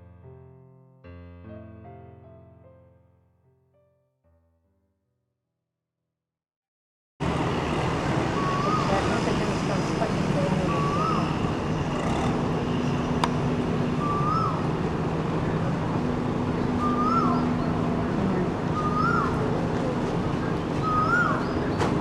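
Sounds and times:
traffic and engine rumble: 0:07.2 - 0:22.0
bird call rising and falling: 0:08.3 - 0:09.0, 0:10.6 - 0:14.8, 0:16.6 - 0:19.6, 0:20.3 - 0:22.0.

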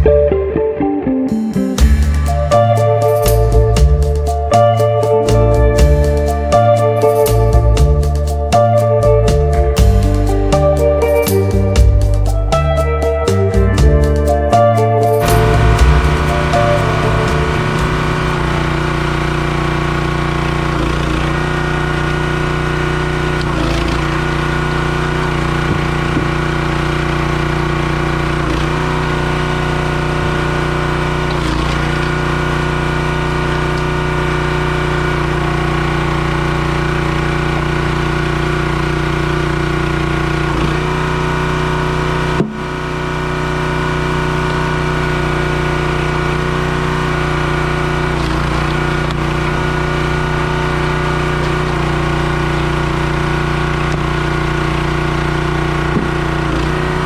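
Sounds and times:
hydraulic log splitter running: 0:15.2 - 0:57.0.

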